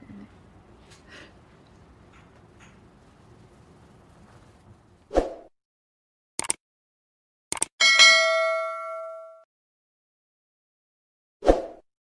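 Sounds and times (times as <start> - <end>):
bright bell ding: 7.8 - 9.5.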